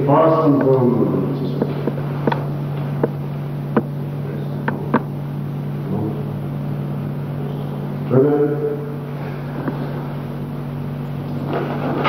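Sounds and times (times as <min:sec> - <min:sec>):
film soundtrack hum and hiss: 0:00.0 - 0:12.0.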